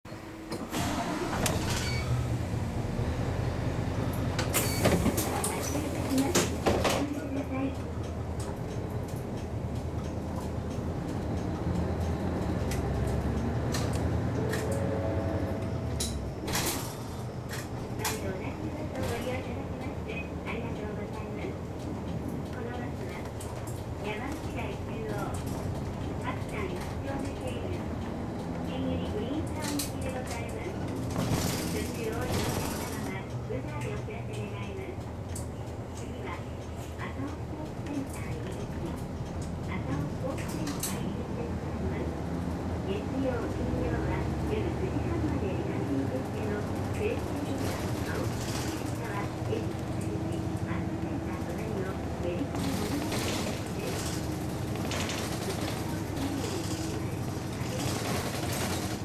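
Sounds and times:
bus diesel engine idling: 0.1s - 59.0s.

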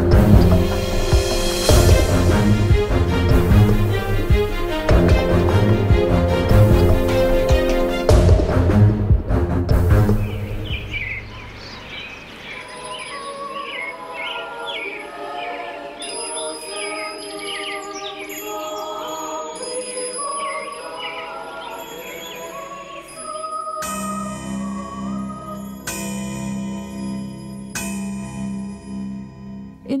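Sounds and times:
loud theme music: 0.0s - 11.2s
soft sustained music: 0.0s - 30.0s
small birds chirping: 10.2s - 26.0s.

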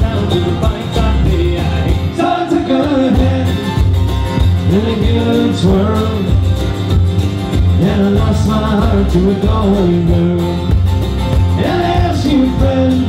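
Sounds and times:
strummed acoustic guitar: 0.0s - 13.0s.

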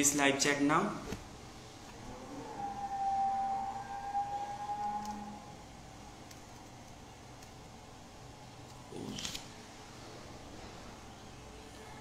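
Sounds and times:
steady tone: 2.0s - 5.8s.

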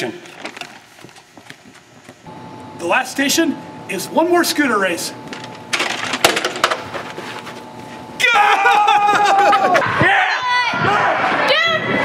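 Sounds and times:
person yelling: 8.2s - 11.9s.

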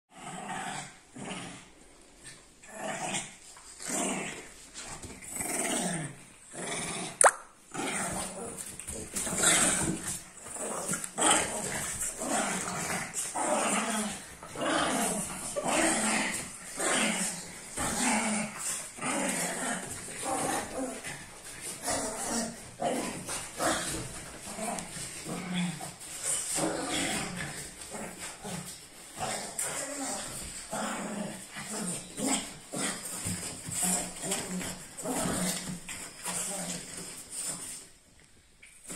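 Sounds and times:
dogs growling: 0.1s - 37.9s.

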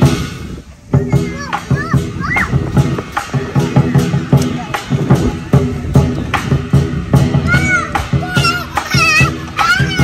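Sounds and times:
lion dance drum beating: 0.0s - 10.0s
children calling out: 0.8s - 5.1s, 7.1s - 10.0s.

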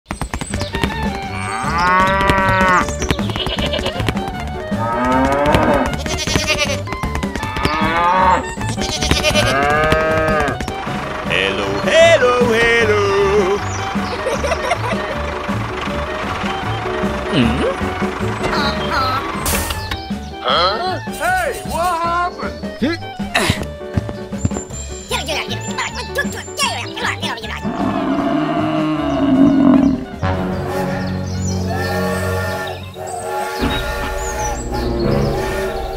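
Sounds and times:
cattle mooing: 1.3s - 2.9s, 4.7s - 6.8s, 7.5s - 10.6s, 27.6s - 30.2s
higher livestock calls: 7.7s - 10.6s, 27.7s - 30.2s.

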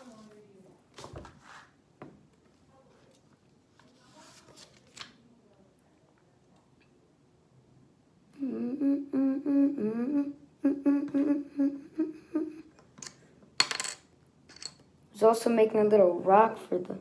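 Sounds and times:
boy humming a tune: 8.3s - 12.8s.

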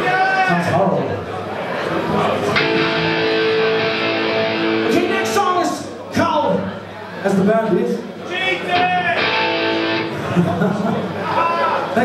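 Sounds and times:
amplified electric guitar: 2.4s - 5.4s, 8.8s - 10.4s.

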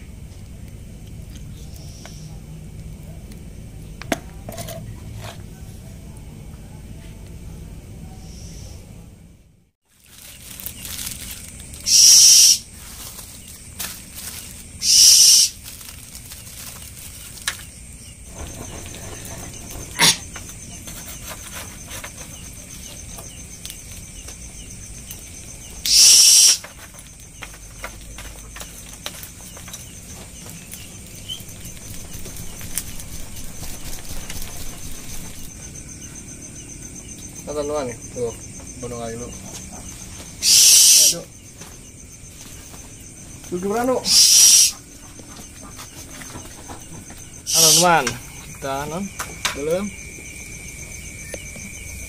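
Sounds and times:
crickets trilling: 0.0s - 52.0s.

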